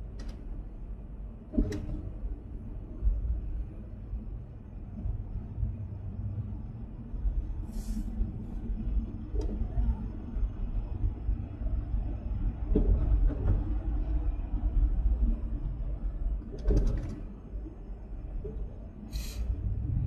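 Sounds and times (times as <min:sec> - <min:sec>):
car road and wind rumble: 0:00.0 - 0:20.0
brief hiss: 0:19.1 - 0:19.5.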